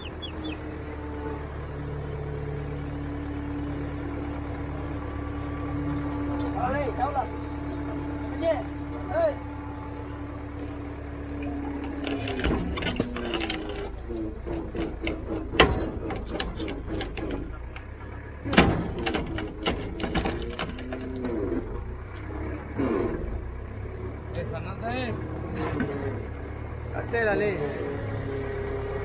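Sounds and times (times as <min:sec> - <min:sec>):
engine running steadily: 0:00.0 - 0:29.0
sharp wood cracks: 0:11.8 - 0:17.9, 0:18.5 - 0:21.3.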